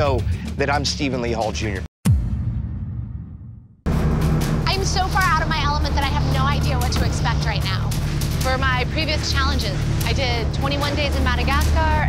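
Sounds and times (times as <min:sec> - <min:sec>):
woman speaking: 0:04.7 - 0:12.0.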